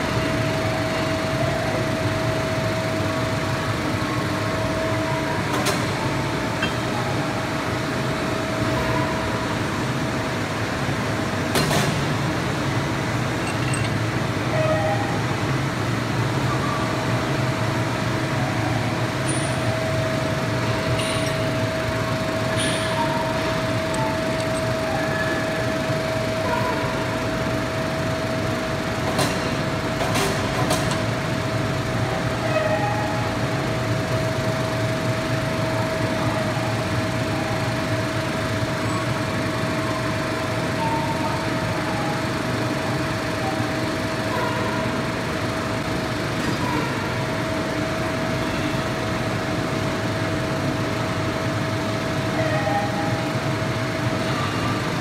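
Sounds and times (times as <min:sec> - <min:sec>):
machinery hum: 0:00.0 - 0:55.0.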